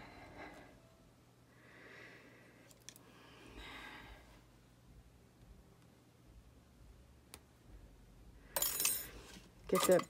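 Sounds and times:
metal tools clattering and scraping: 0:08.6 - 0:10.0.

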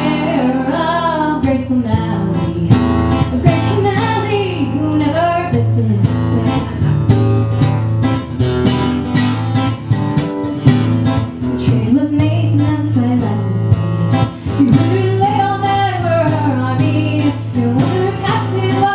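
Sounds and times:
woman singing: 0:00.0 - 0:07.0, 0:11.6 - 0:18.9
acoustic guitar strumming: 0:00.0 - 0:18.9.

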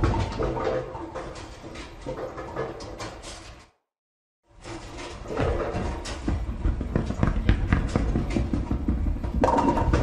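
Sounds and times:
bowling pins clattering: 0:05.2 - 0:10.0.

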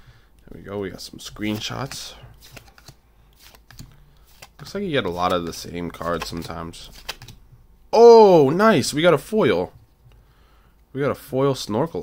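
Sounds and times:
trading cards clicking and sliding: 0:01.0 - 0:07.4.

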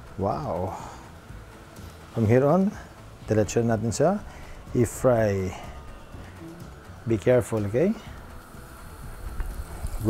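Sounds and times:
oil sizzling and bubbling: 0:00.0 - 0:03.3, 0:08.0 - 0:10.0.

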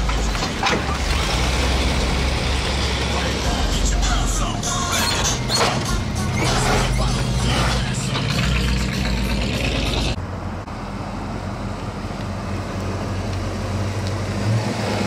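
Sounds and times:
car engine rumbling by: 0:00.0 - 0:15.0
car engines and street noise: 0:00.0 - 0:15.0.

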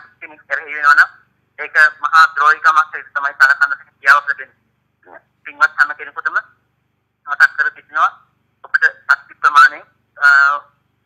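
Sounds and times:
man talking over telephone: 0:00.0 - 0:06.6, 0:07.2 - 0:10.8.

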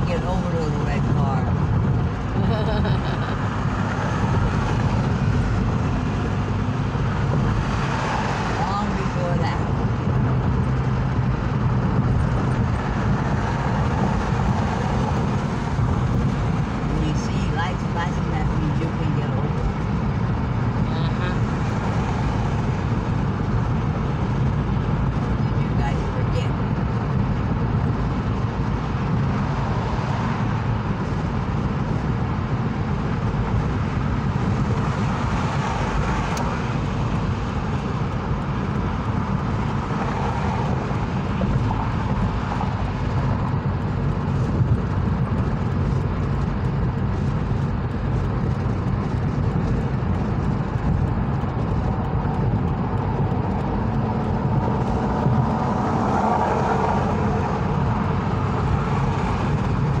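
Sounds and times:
car cabin road and engine noise: 0:00.0 - 1:00.0.

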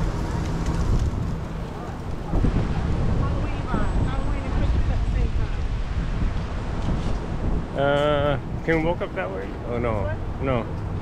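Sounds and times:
outdoor city ambience: 0:00.0 - 0:11.0
wind rumbling on microphone: 0:00.0 - 0:11.0.

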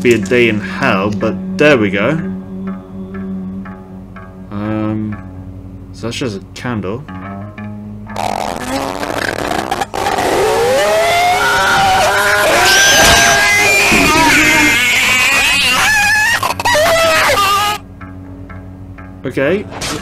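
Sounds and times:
screeching and shrieking cries: 0:09.7 - 0:17.8.

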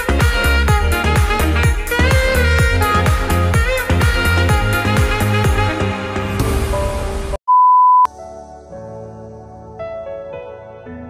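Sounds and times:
background music: 0:00.0 - 0:07.4, 0:08.1 - 0:11.0
soft slow music: 0:08.1 - 0:11.0.

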